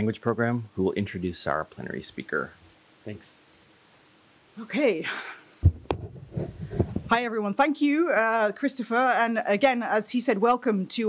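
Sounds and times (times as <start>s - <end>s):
microphone click: 5.6s - 7.1s
microphone handling thumps: 5.6s - 7.2s.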